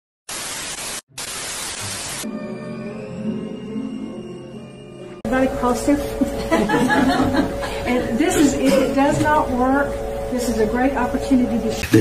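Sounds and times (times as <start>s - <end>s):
television static hiss: 0.3s - 2.2s.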